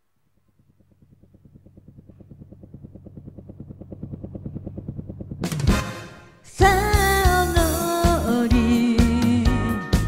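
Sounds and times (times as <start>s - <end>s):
low hum: 0.0s - 9.8s
chugging backing-track pulse: 0.4s - 10.0s.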